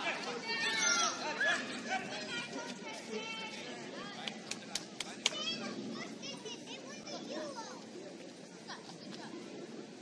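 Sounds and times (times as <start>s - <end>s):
children shouting: 0.0s - 2.5s.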